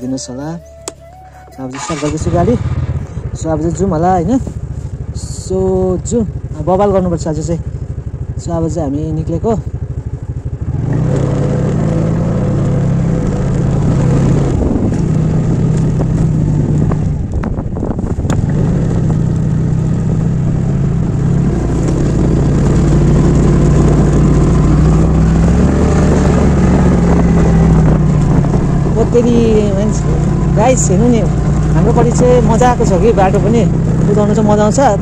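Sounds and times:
scooter engine running: 0:00.0 - 0:35.0.

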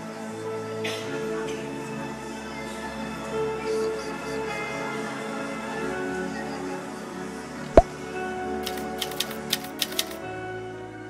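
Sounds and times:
typewriter clicks: 0:08.6 - 0:10.2.

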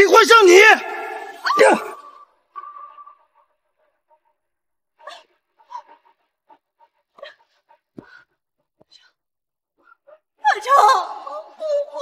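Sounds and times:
woman sobbing and whimpering: 0:05.0 - 0:06.2, 0:10.4 - 0:12.0.

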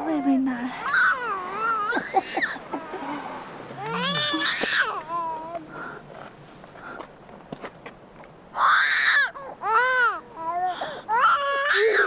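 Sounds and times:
baby crying: 0:00.8 - 0:03.1, 0:03.8 - 0:05.6, 0:08.6 - 0:12.0.

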